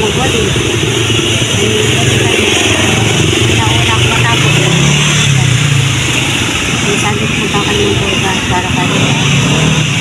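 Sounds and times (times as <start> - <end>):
street noise: 0.0 - 10.0
vehicle engine running close by: 0.0 - 10.0.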